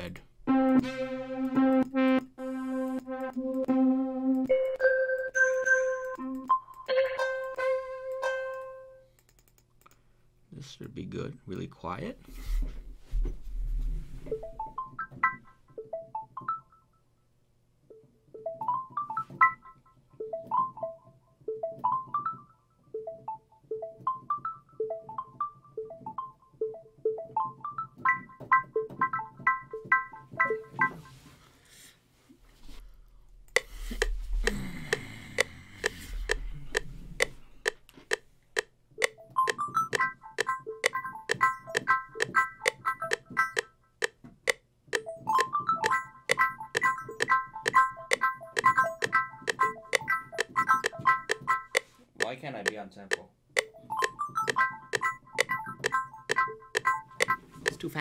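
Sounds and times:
synth pluck chords: 0:00.5 - 0:08.8
ticking beat: 0:01.4 - 0:05.4, 0:33.5 - 0:58.0.

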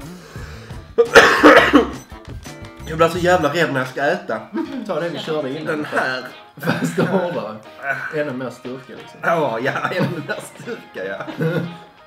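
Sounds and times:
man coughing: 0:01.0 - 0:02.0, 0:11.3 - 0:11.8.

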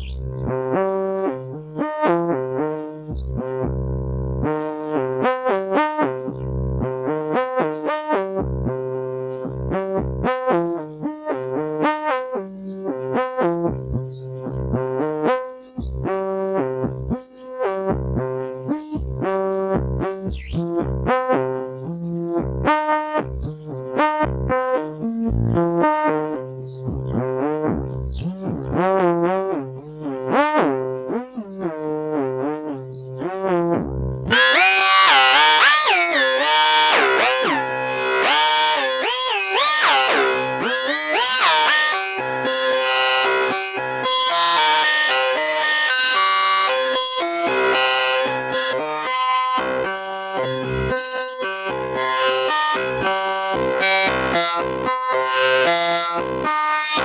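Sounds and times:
short synth notes with pitch glides: 0:32.2 - 0:57.0.

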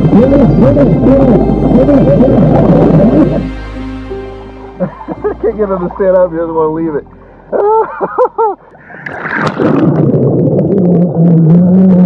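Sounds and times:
person laughing: 0:01.6 - 0:03.5, 0:04.8 - 0:05.9, 0:07.5 - 0:08.6
water bubbling: 0:05.8 - 0:12.0.

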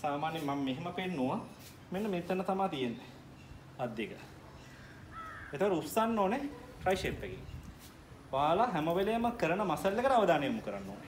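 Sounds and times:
man speaking: 0:08.3 - 0:11.0.

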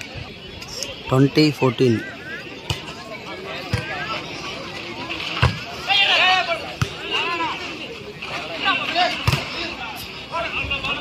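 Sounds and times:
crowd noise: 0:00.0 - 0:11.0
ball thud: 0:09.2 - 0:09.5.

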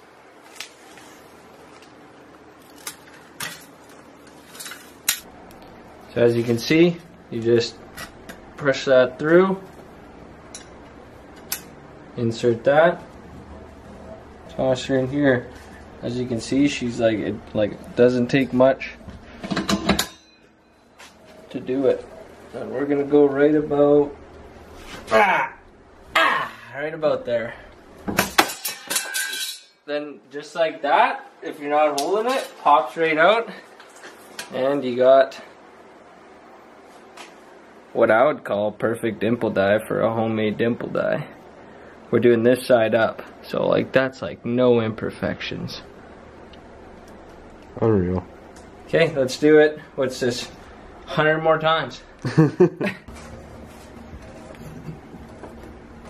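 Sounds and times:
faint metallic ringing: 0:19.7 - 0:21.1.

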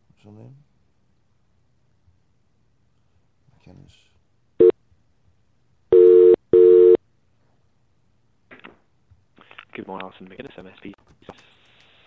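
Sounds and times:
telephone ringing tone: 0:05.9 - 0:07.0.

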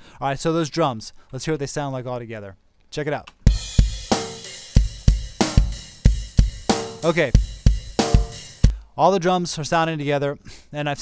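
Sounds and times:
cymbals: 0:03.5 - 0:08.8
kick drum pattern: 0:03.5 - 0:08.8.

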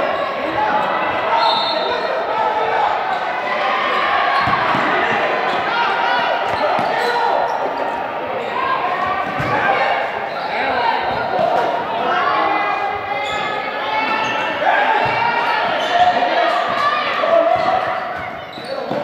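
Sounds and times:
voices calling out: 0:00.0 - 0:19.0.

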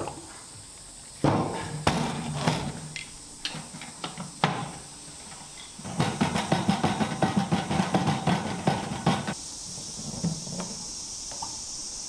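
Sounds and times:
stick knocking inside metal can: 0:05.8 - 0:09.4.

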